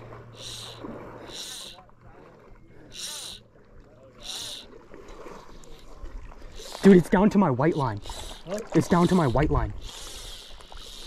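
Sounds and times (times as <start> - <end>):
fishing reel drag buzzing: 0.1 - 1.8, 2.9 - 3.5, 4.2 - 4.8, 6.5 - 7.1, 7.7 - 11.0.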